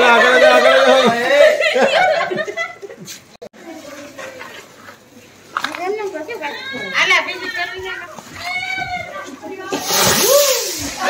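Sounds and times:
firework hissing: 9.7s - 11.0s.

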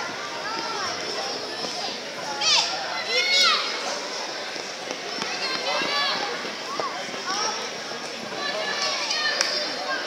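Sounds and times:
crowd chatter: 0.0s - 10.0s
children shouting: 2.3s - 3.9s.

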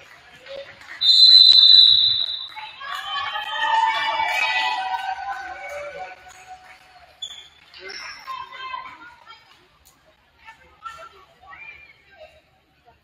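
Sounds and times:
crowd shouting and cheering: 1.0s - 6.8s.

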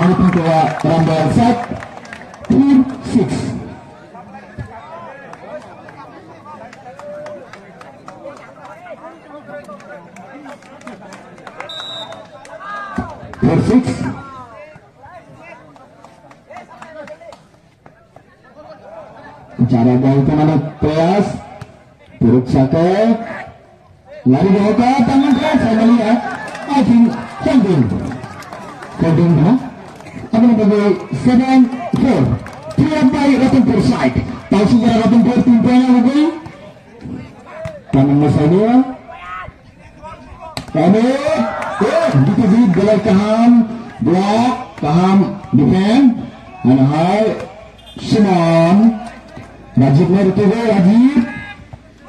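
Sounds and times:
distant crowd chatter and shouts: 0.0s - 52.0s.

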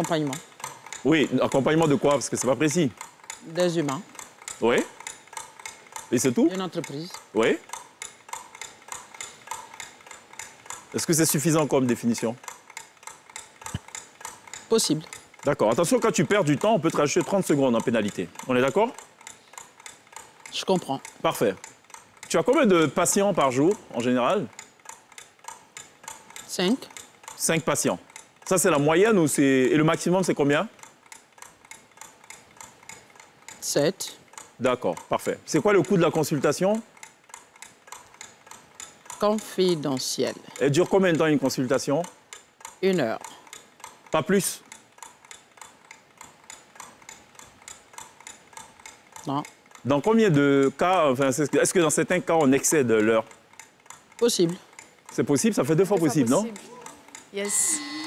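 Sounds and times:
countdown clock ticking: 0.0s - 58.0s
person speaking a word: 55.9s - 57.0s.

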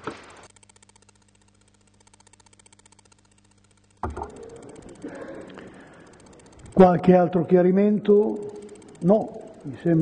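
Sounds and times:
faint electrical hum: 0.0s - 10.0s
fast fluttering buzz: 0.0s - 10.0s.

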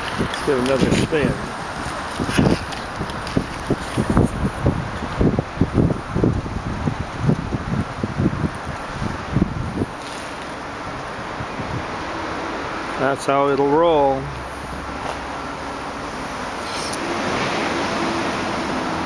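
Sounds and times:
wind buffeting microphone: 0.0s - 12.8s.

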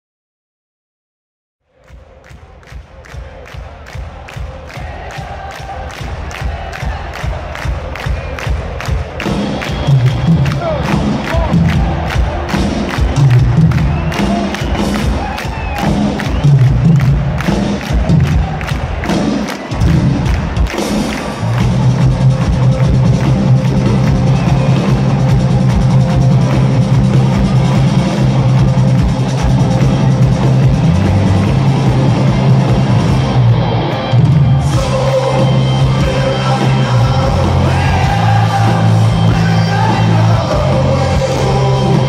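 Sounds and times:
crowd cheering: 1.6s - 42.0s
live rock band playing: 8.0s - 42.0s.

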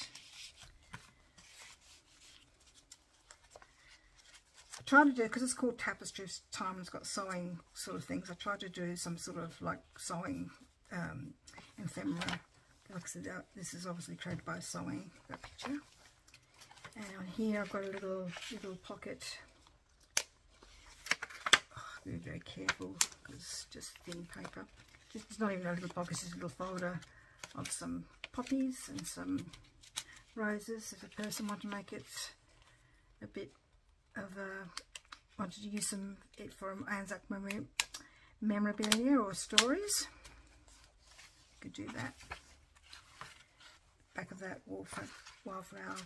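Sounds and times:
paper cards rustling and sliding: 0.0s - 5.6s, 11.4s - 21.7s, 22.5s - 32.2s, 38.8s - 44.0s, 44.7s - 46.0s.

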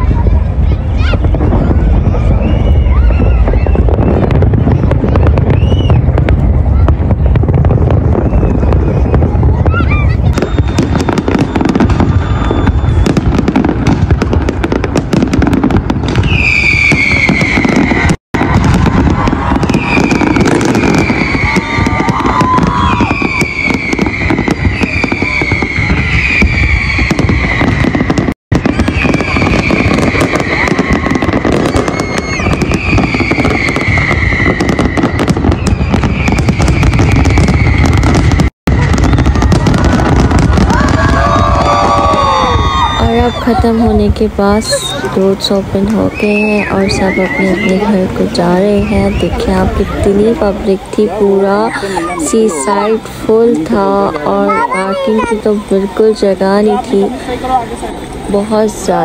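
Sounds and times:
fireworks crackling: 0.0s - 59.0s
falling whistles: 2.1s - 6.1s, 8.1s - 13.4s, 16.2s - 18.7s, 19.6s - 39.9s, 41.1s - 43.6s, 44.7s - 45.1s, 46.0s - 47.9s.

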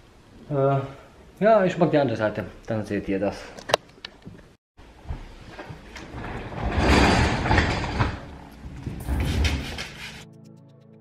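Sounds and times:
background music with held tones: 8.0s - 11.0s.

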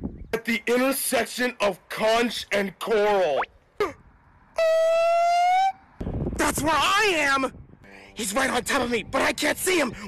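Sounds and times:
siren-like tone: 4.6s - 5.9s.

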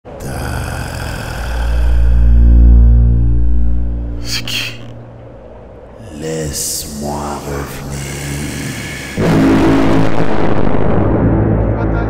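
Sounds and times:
low rumbling drone: 0.1s - 12.0s
heavy steady bass: 1.0s - 5.9s.

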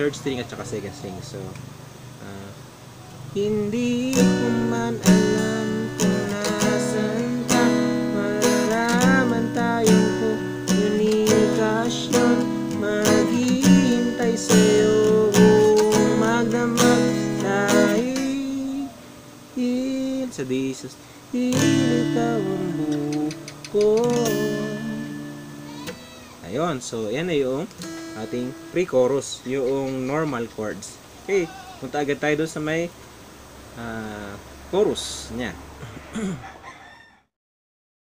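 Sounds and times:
acoustic guitar strumming: 3.3s - 32.7s.

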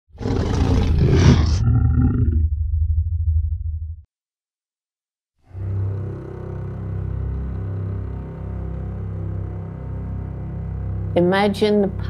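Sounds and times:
hissy roar into low rumble: 0.4s - 3.6s.

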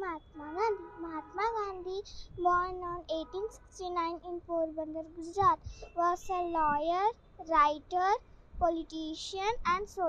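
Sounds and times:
girl reciting in sing-song tone: 0.0s - 10.0s.

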